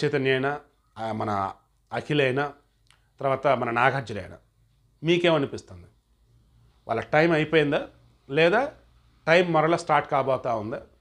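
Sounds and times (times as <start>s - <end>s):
man speaking: 0.0s - 6.0s, 6.8s - 11.0s.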